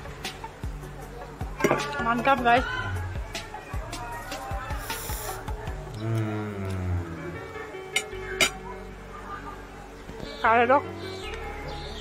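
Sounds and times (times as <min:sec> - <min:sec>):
faint background music: 0:00.0 - 0:12.0
cutlery clinking against plate: 0:07.9 - 0:08.6.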